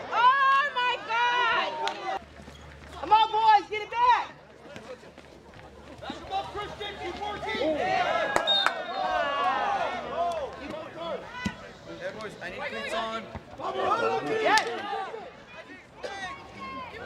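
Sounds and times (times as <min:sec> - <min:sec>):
crowd shouting: 0:00.0 - 0:02.2, 0:06.0 - 0:11.9, 0:12.7 - 0:17.0.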